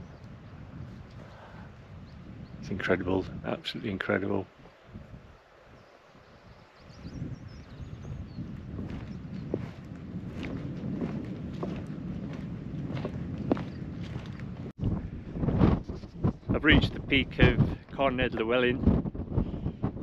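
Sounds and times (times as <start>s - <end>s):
wind buffeting microphone: 0.0s - 20.0s
footsteps on grass and stones: 8.4s - 14.7s.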